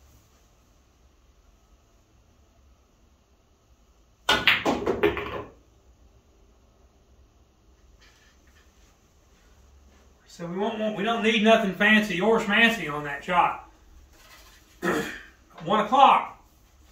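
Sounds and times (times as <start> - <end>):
pool balls clicking: 4.2 - 5.6
cue tip striking ball: 4.3 - 5.6.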